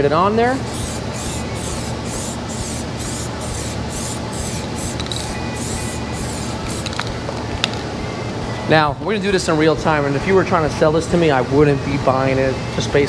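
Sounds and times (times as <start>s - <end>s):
aerosol can spraying hiss: 0.7s - 7.1s.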